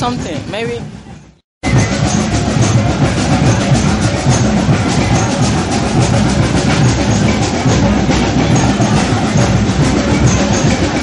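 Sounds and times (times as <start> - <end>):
drums playing fast rhythm: 0.0 - 11.0.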